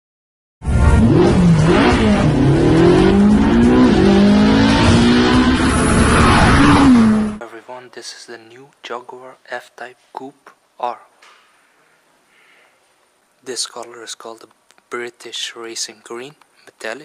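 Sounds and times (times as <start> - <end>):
car engine revving hard: 0.6 - 7.4
road and exhaust noise: 0.6 - 7.4.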